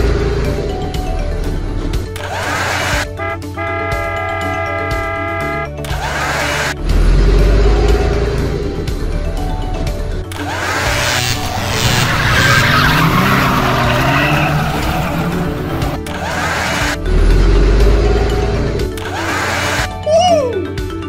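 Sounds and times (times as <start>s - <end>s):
car engine: 0.0s - 19.9s
tyres skidding: 0.0s - 20.0s
background music: 0.0s - 21.0s.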